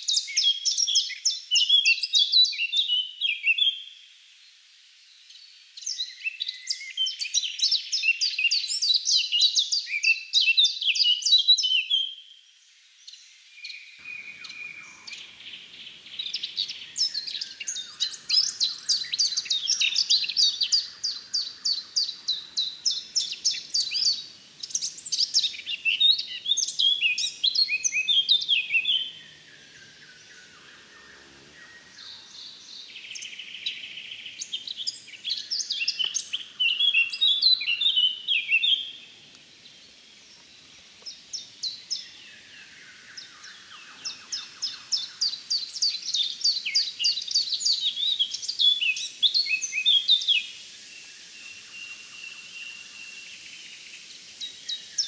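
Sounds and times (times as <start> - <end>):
songbird singing: 0.0 - 55.0.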